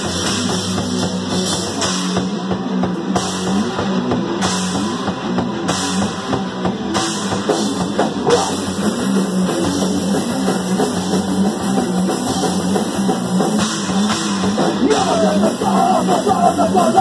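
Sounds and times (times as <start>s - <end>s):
punk rock band playing: 0.0s - 17.0s.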